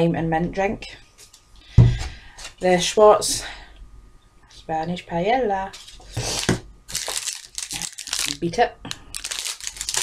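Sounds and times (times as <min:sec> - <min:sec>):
plastic packaging crinkling: 0:05.8 - 0:10.0.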